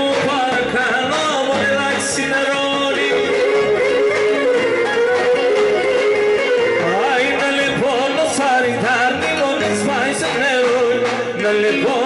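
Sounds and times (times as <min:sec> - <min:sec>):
keyboard: 0:00.0 - 0:12.0.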